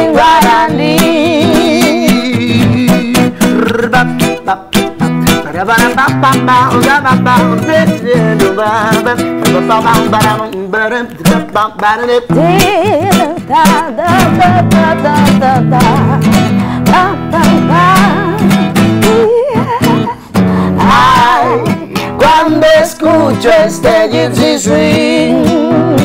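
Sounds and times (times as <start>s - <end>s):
classical guitar strummed: 0.0s - 26.0s
person singing: 0.0s - 26.0s.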